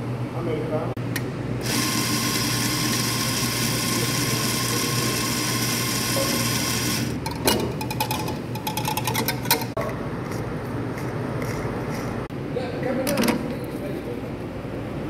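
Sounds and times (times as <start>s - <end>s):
coffee grinder running: 1.6s - 7.2s.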